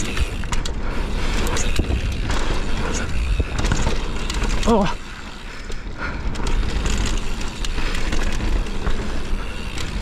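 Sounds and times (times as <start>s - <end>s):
wind rumbling on microphone: 0.0s - 4.6s
bike chain and frame rattling: 0.0s - 10.0s
bike tyres rolling over dirt: 0.0s - 10.0s.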